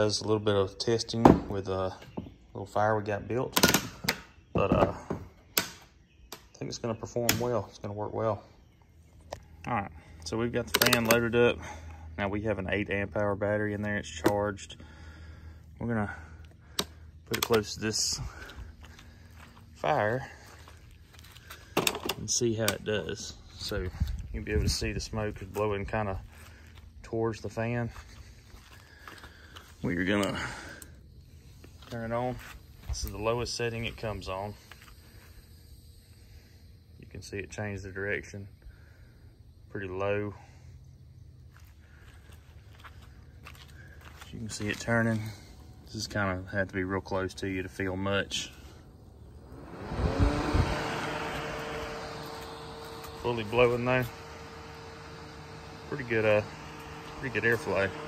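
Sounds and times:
fan running: 4.9 - 58.0
man talking: 19.8 - 20.4, 22.2 - 26.3, 29.8 - 30.6, 53.1 - 54.4, 55.3 - 58.0.

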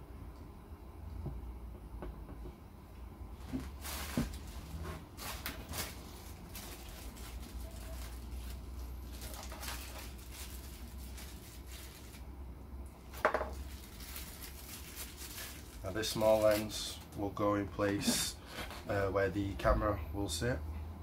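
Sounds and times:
low steady hum: 0.0 - 21.0
plastic bag rustling: 3.4 - 12.4, 13.0 - 17.2.

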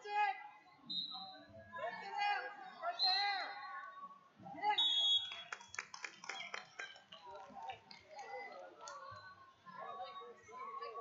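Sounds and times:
voices in a gym: 0.0 - 11.0
hands clapping quickly: 5.2 - 9.0.

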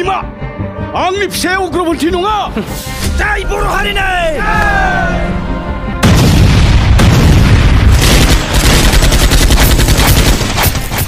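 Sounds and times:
trailer music: 0.0 - 11.0
deep cinematic boom: 6.0 - 8.3.

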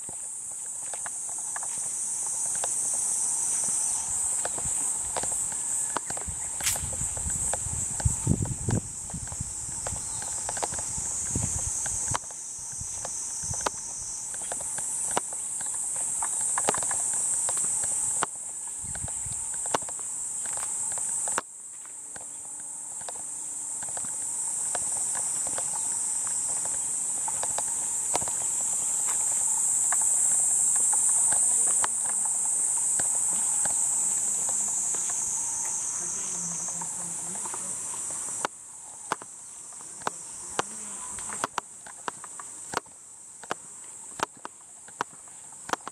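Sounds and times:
cicadas shrilling: 0.0 - 45.9.

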